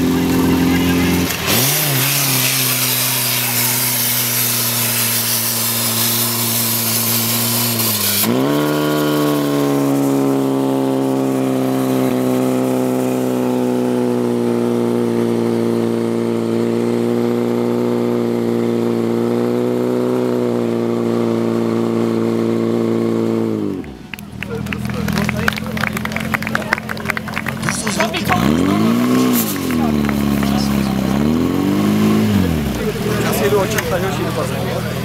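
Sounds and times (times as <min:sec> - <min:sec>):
pump engine running: 0:00.0 - 0:15.4.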